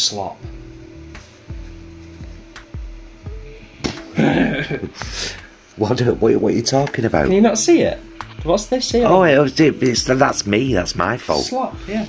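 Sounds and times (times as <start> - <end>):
background music of plucked notes: 0.4 - 12.0
man laughing loudly: 4.1 - 5.2.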